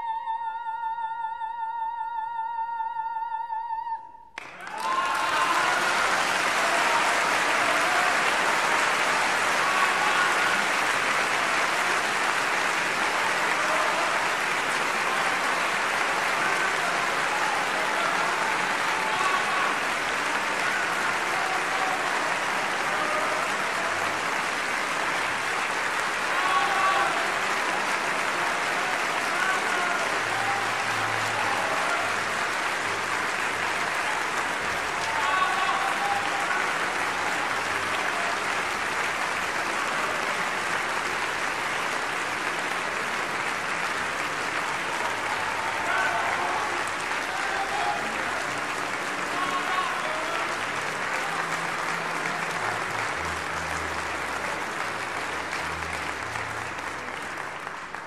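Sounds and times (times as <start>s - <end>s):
audience clapping: 4.4s - 58.0s
crowd shouting calls: 4.6s - 40.5s, 44.5s - 53.8s.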